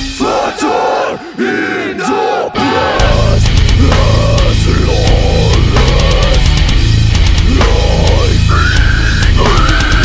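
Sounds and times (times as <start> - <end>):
metal band playing: 0.0 - 1.0, 2.5 - 10.0
voices chanting held notes: 0.0 - 6.5.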